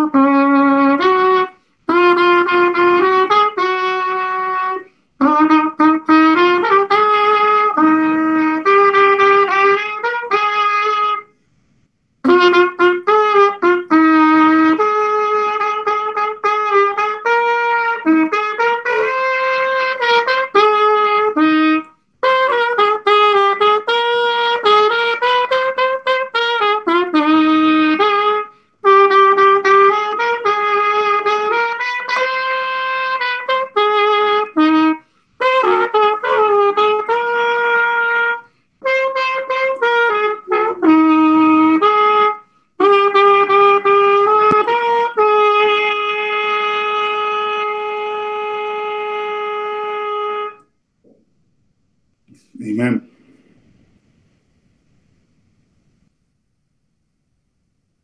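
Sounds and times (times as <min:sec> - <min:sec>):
solo trumpet playing hymn: 0:00.0 - 0:11.6, 0:12.2 - 0:50.8.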